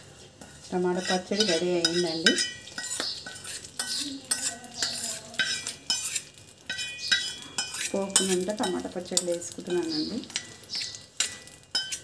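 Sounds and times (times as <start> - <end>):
metal spoon scraping metal vessel: 0.4 - 12.0
spoon clinking against vessel: 1.0 - 12.0.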